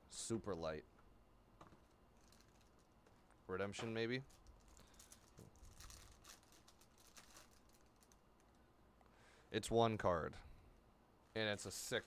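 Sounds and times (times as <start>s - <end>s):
foil wrapper crinkling and tearing: 2.2s - 2.9s, 4.2s - 8.2s.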